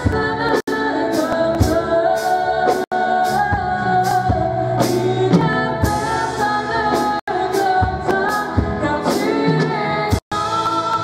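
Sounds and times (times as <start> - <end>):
women singing gospel song: 0.0 - 11.0.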